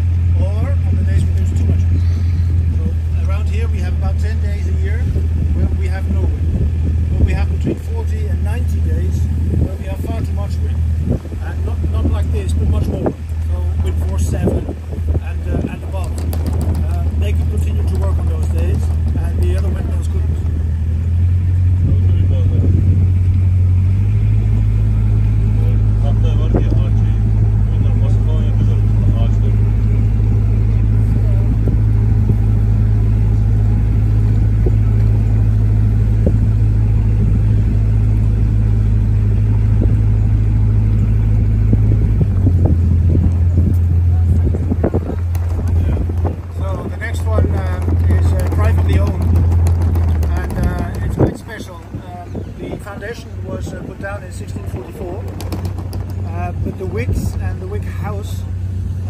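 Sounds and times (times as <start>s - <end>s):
boat motor droning: 0.0s - 59.0s.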